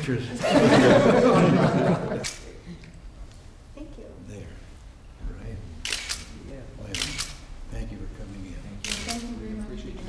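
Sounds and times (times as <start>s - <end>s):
camera shutters clicking: 2.2s - 2.5s, 5.8s - 7.4s, 8.8s - 9.4s.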